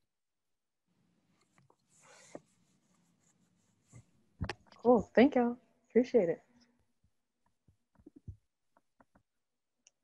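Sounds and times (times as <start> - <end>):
soft rustle: 1.3 - 5.2.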